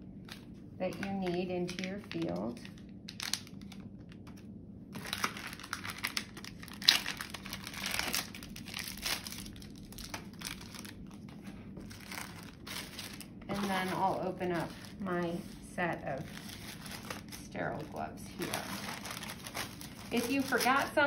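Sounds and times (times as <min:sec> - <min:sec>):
packaging crinkling and tearing: 0:00.2 - 0:21.0.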